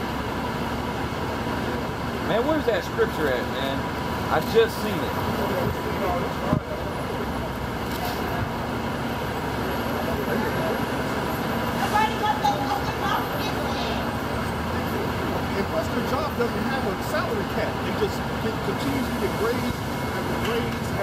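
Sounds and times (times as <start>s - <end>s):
road traffic: 0.0s - 21.0s
indistinct voices talking: 0.6s - 21.0s.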